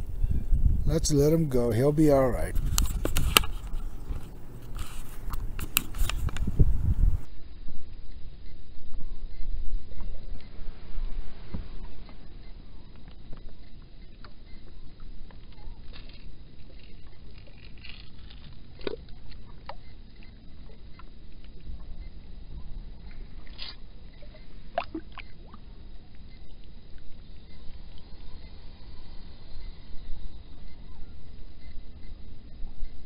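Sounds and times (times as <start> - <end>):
steady low rumble: 0.0 - 17.4
water sloshing and splashing: 23.1 - 25.7.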